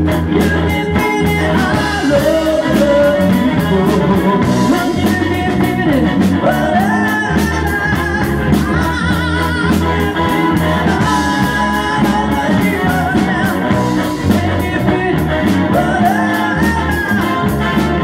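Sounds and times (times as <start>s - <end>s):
live rock band playing: 0.0s - 18.0s
person singing: 0.0s - 18.0s.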